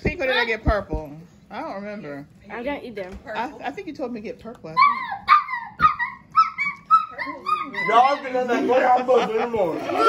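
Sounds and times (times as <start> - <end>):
girl squealing: 4.8 - 8.2.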